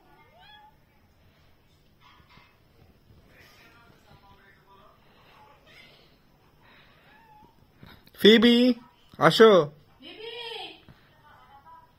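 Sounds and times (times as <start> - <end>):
soft rustles: 1.2 - 4.5.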